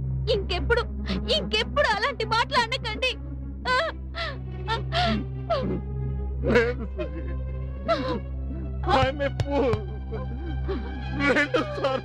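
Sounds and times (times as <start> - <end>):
film score music: 0.0 - 12.0
person sobbing: 3.7 - 5.8, 6.5 - 7.3, 7.9 - 8.2, 10.7 - 12.0.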